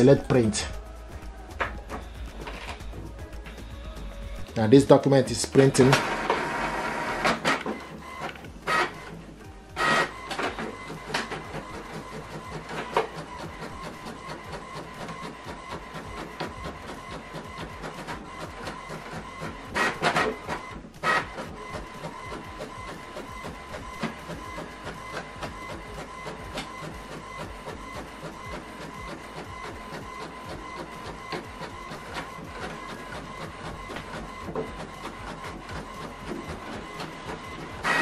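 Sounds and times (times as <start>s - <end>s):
inkjet printer whining and ticking: 0.0s - 38.0s.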